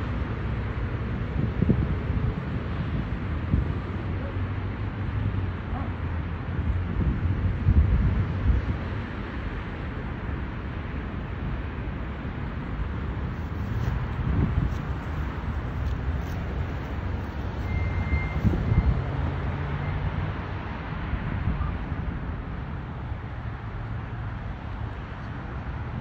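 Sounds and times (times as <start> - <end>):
wind on the microphone: 0.0 - 11.6, 12.3 - 19.5
low rumble of road traffic: 0.0 - 26.0.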